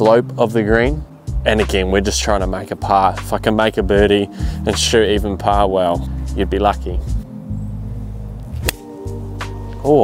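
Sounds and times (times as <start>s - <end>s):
background music: 0.0s - 10.0s
golf club striking ball: 8.4s - 9.6s.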